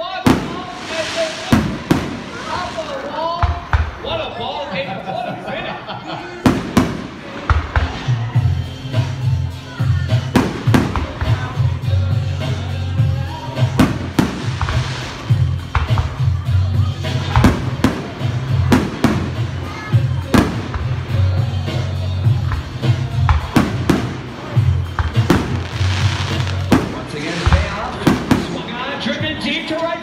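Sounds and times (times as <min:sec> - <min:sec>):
fireworks bursting with sharp bangs: 0:00.0 - 0:04.7, 0:06.3 - 0:29.4
loud music with strong bass: 0:08.2 - 0:28.5.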